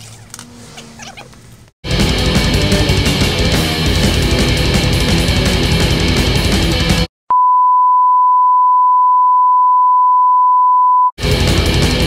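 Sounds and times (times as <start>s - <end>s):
steady test tone beep: 7.3s - 11.1s.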